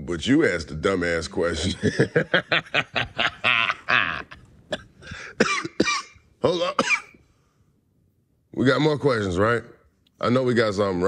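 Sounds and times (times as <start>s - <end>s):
man laughing hard: 1.7s - 4.4s.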